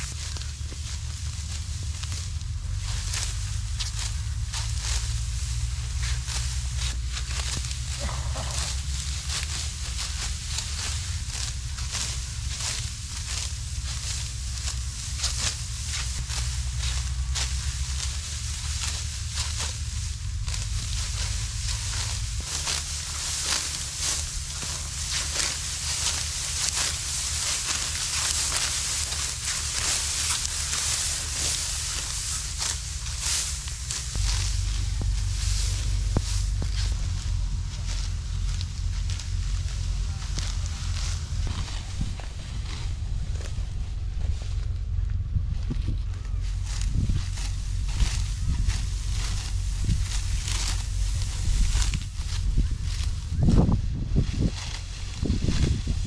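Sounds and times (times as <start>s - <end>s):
sickles cutting dry wheat: 0.0s - 56.0s
steady low rumble: 0.0s - 56.0s.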